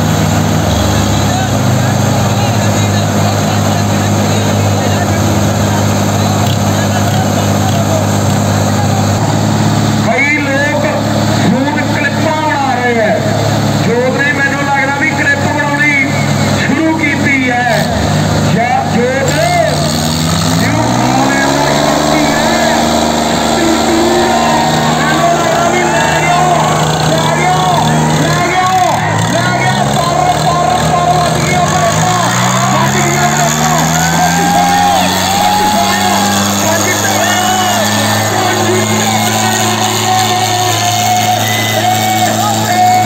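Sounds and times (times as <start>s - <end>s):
diesel tractor engines revving: 0.0s - 43.0s
people shouting: 20.6s - 43.0s.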